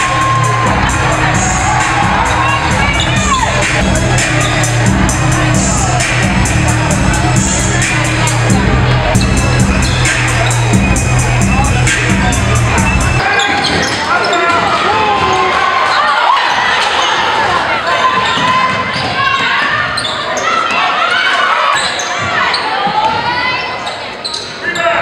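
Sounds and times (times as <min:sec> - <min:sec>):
music track with a beat: 0:00.0 - 0:13.2
people calling out in a hall: 0:00.0 - 0:25.0
sneakers squeaking: 0:00.8 - 0:25.0.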